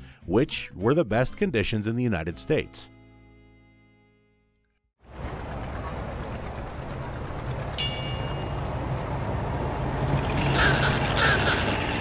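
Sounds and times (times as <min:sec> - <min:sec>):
vehicle engine rumble: 0:05.0 - 0:12.0
short high ring: 0:07.8 - 0:08.7.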